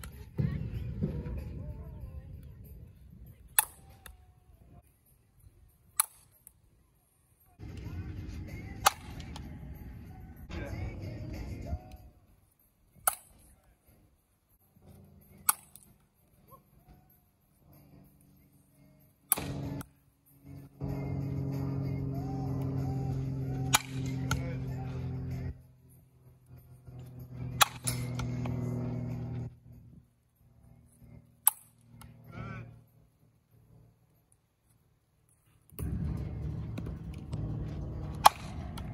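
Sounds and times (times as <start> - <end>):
low outdoor rumble: 0.0 - 38.9
bat cracking softballs: 7.6 - 9.6, 23.5 - 24.6, 27.4 - 29.5, 35.6 - 38.9.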